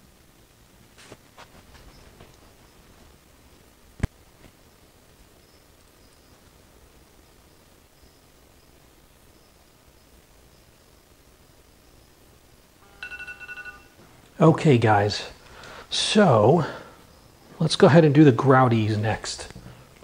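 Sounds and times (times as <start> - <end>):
phone timer alarm pulsing: 12.8 - 14.0.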